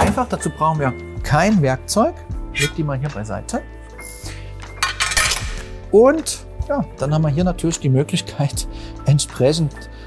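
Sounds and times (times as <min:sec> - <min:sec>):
background music: 0:00.0 - 0:10.0
metal panels clinking: 0:04.6 - 0:05.8.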